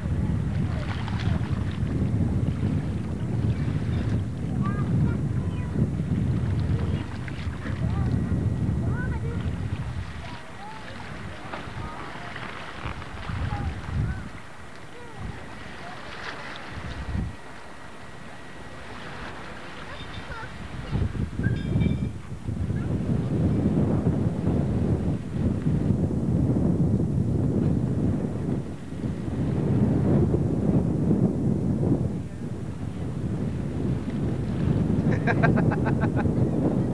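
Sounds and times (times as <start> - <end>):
wind buffeting microphone: 0.0 - 36.9.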